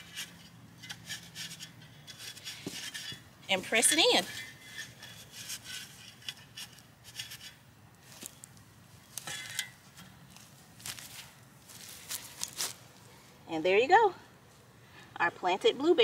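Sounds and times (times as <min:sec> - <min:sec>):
soil and dry grass scraping: 0:00.0 - 0:13.7.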